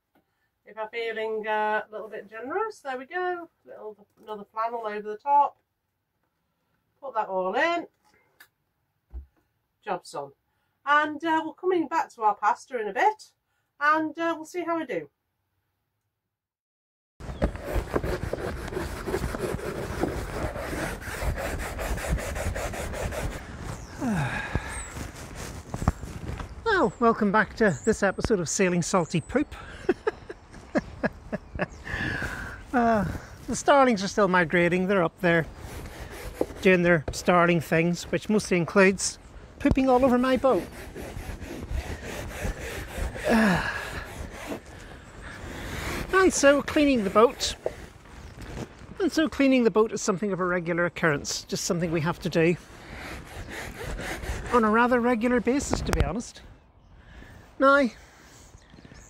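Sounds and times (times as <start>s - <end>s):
brush scrubbing a deck: 17.3s - 26.5s, 32.7s - 49.2s, 51.2s - 55.9s
wind buffeting microphone: 17.3s - 27.0s.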